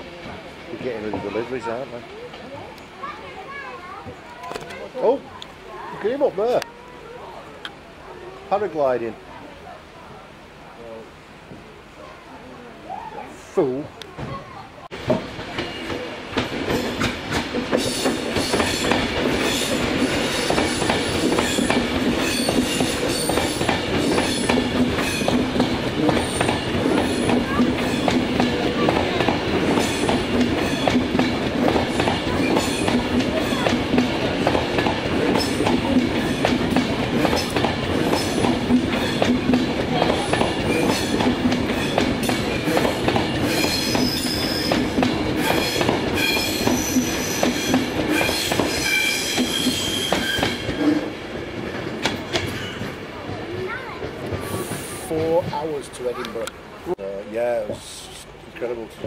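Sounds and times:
electric trains passing at speed: 0.0 - 59.0
rapid rail clatter: 15.0 - 55.8.

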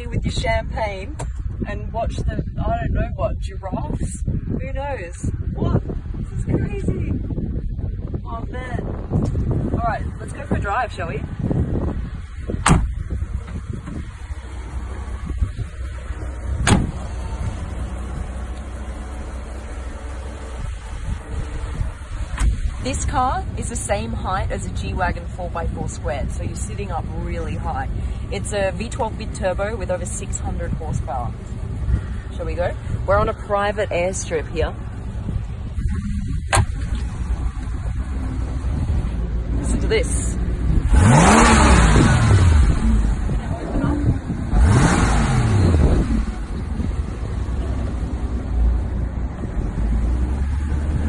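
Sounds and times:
steady low rumble: 0.0 - 51.0
car engine idling: 9.1 - 51.0
car doors shutting: 12.6 - 14.1, 16.5 - 17.2, 22.3 - 22.7, 36.4 - 37.3.

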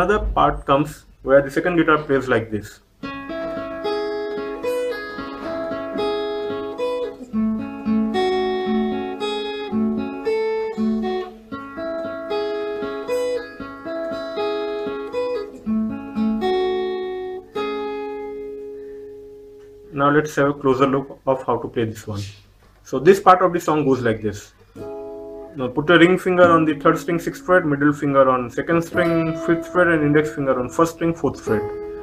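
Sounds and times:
acoustic guitar picked riff: 2.9 - 20.0, 23.8 - 32.0.

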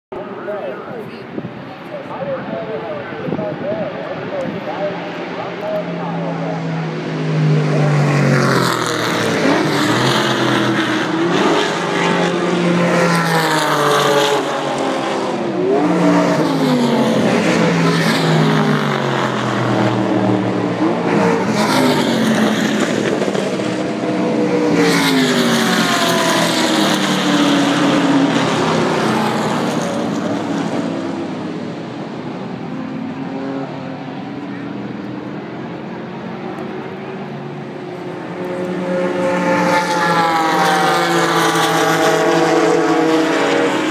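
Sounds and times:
race cars passing at speed: 0.2 - 43.9.

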